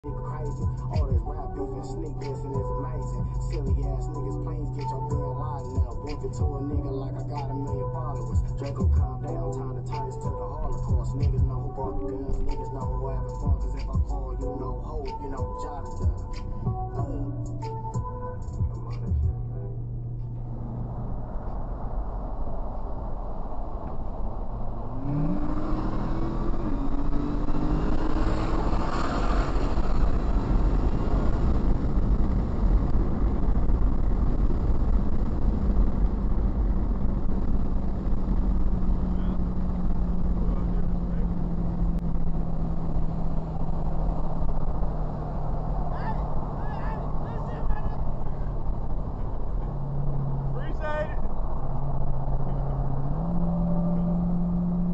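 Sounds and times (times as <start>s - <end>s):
car engine accelerating: 0.0s - 54.9s
road rumble: 0.0s - 54.9s.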